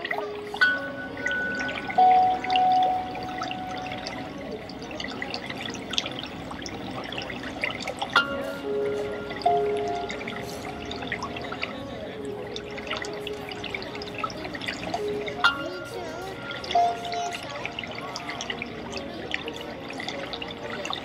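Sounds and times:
calm music of struck notes: 0.0s - 21.0s.

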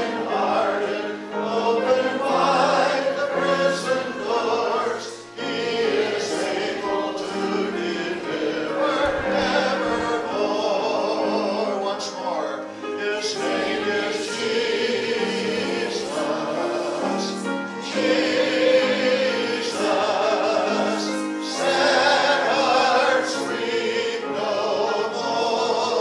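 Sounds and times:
hymn sung with instruments: 0.0s - 26.0s.

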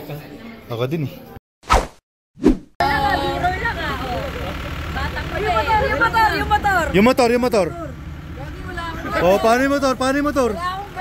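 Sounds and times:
people talking and laughing: 2.8s - 11.0s
vehicle engine idling: 2.8s - 11.0s.

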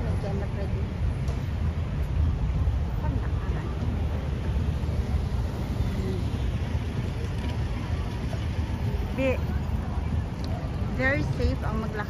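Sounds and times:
rumble of cars going by: 0.0s - 12.0s.

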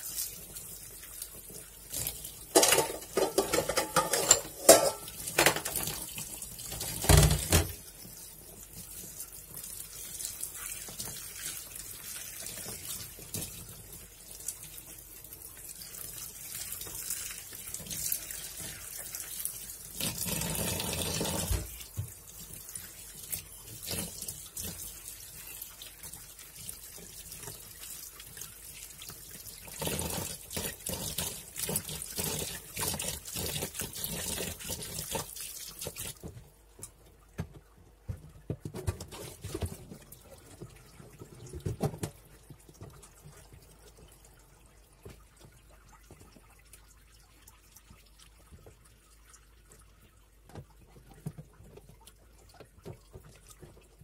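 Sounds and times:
water splashing in a basin: 0.0s - 54.0s.

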